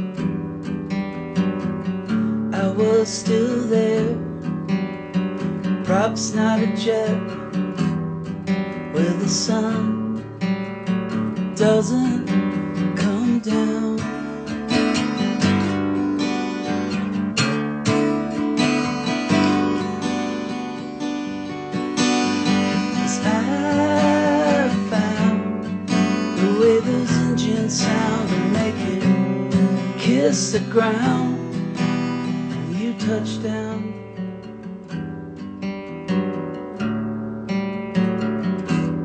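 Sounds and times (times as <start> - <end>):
acoustic guitar strummed: 0.0 - 39.0.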